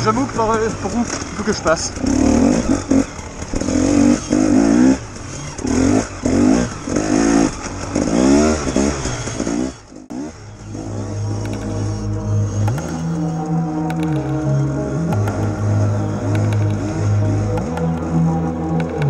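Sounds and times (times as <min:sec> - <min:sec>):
dirt bike engine revving: 0:00.0 - 0:19.0
music: 0:10.7 - 0:19.0.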